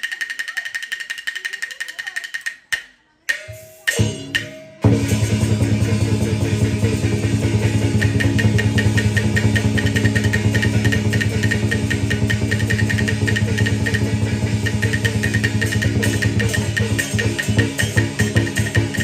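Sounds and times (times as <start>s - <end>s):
high clicking beat: 0.0s - 5.0s, 6.8s - 19.0s
fast percussive beat: 0.0s - 19.0s.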